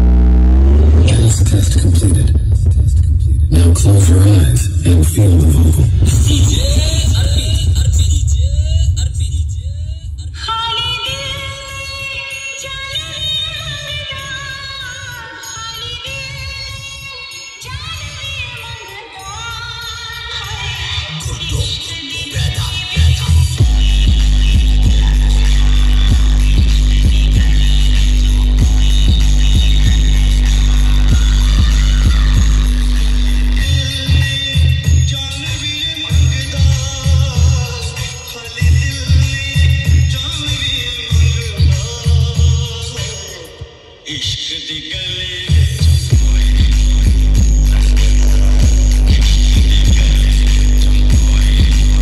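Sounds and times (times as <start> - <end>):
electronic music with heavy bass: 0.0 - 52.0.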